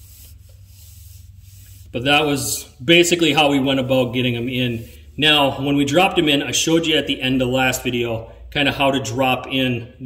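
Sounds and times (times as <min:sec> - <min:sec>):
faint background hiss: 0:00.0 - 0:08.7.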